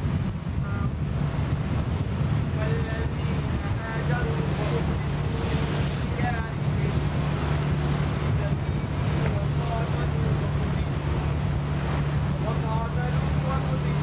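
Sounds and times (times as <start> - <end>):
boat engine drone: 0.0 - 14.0
wind noise on microphone: 0.0 - 14.0.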